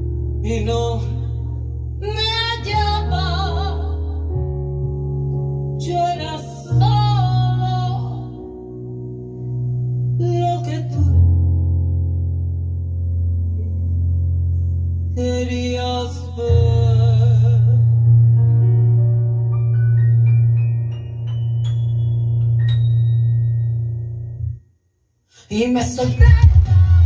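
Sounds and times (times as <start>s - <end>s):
woman singing pop ballad: 2.0s - 4.0s, 5.8s - 8.4s, 25.5s - 27.0s.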